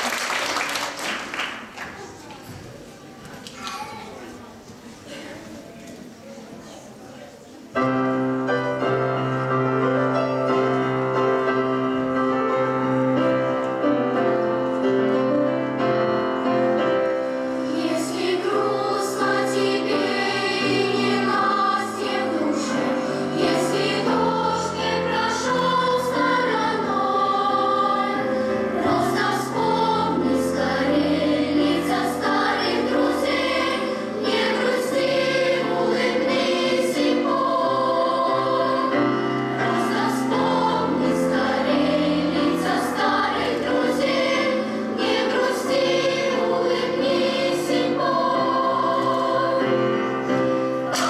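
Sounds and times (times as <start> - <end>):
piano accompaniment: 7.6 - 51.0
girls' choir singing: 10.5 - 51.0.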